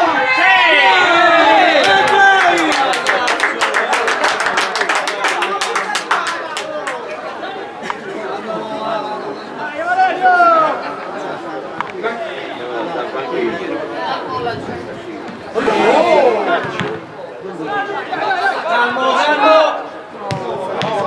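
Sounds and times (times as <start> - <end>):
loud drawn-out shout: 0.0 - 3.1
chatter of voices: 0.0 - 21.0.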